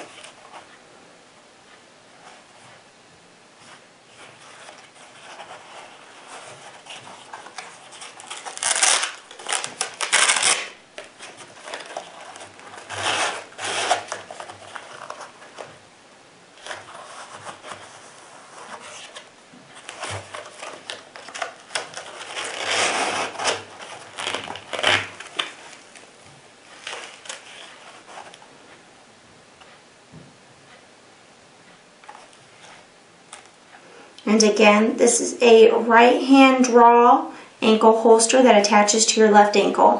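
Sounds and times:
hook-and-loop fastener peeled apart: 7.4s - 10.8s.

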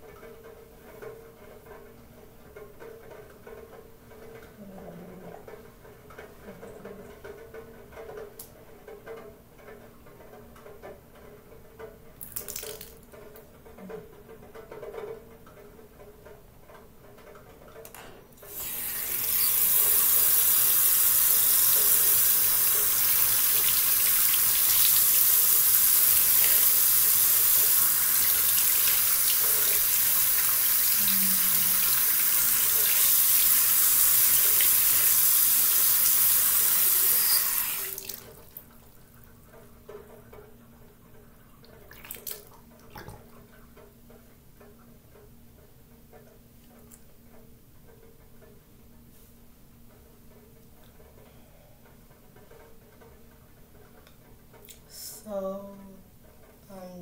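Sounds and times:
tap running into sink: 17.9s - 38.7s.

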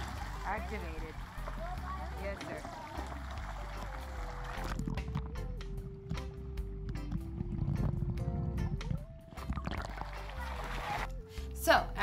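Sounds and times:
muffled water noises: 0.0s - 11.2s
slow melody with low bass: 0.0s - 12.0s.

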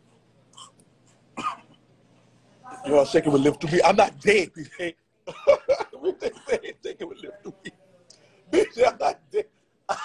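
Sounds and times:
man coughing: 1.4s - 1.8s, 8.5s - 10.0s.

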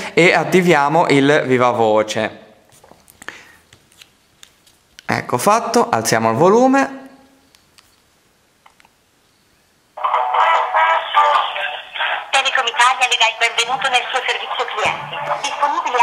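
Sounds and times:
recorded voice over a phone line: 10.0s - 16.0s.

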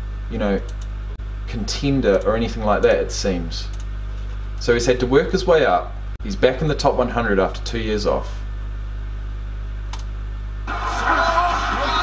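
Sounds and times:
steady low hum: 0.0s - 12.0s
sharp click: 0.6s - 1.0s, 9.9s - 10.1s.

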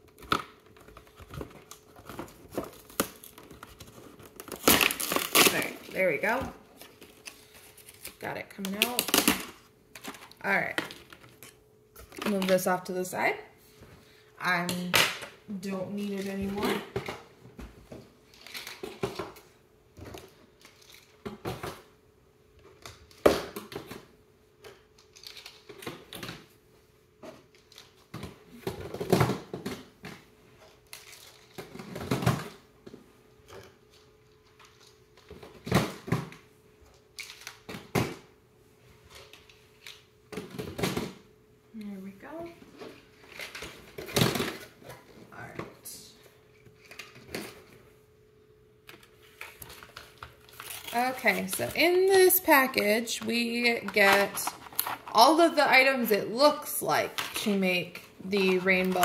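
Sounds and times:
faint steady hum: 0.0s - 59.0s
plastic packaging crinkling: 0.4s - 6.0s, 49.0s - 55.9s.

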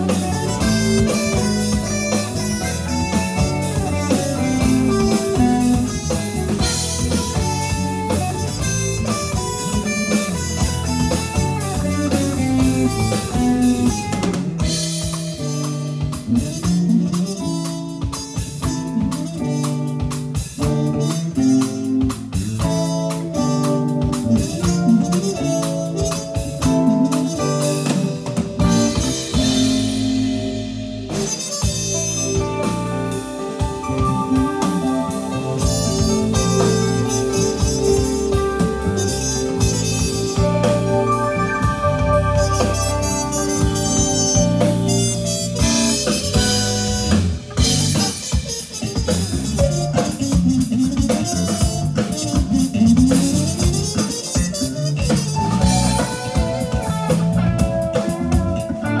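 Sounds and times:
bass guitar: 0.0s - 59.0s
drum and cymbal hits: 0.0s - 59.0s
electric guitar: 0.0s - 59.0s
jazz-funk band playing: 0.0s - 59.0s
trumpet sustained lead notes: 28.6s - 59.0s.

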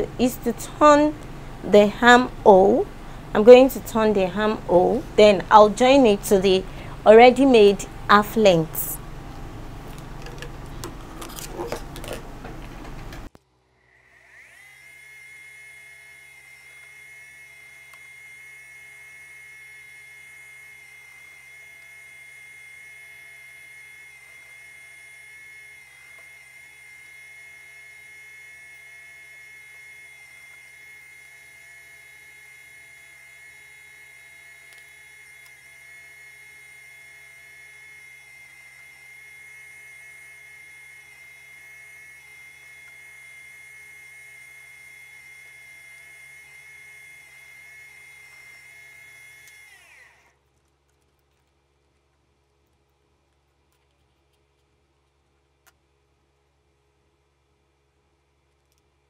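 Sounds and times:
sewing machine whining: 13.8s - 50.4s.

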